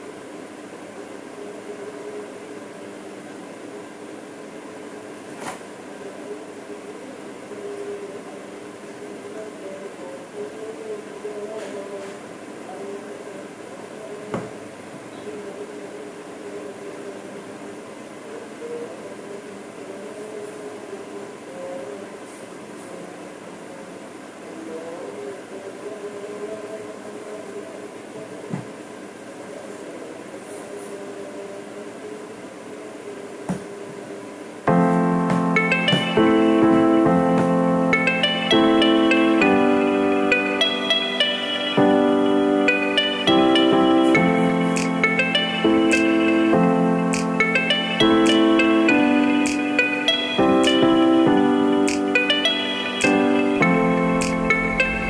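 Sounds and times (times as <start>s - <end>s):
mechanical hum: 0.0s - 55.0s.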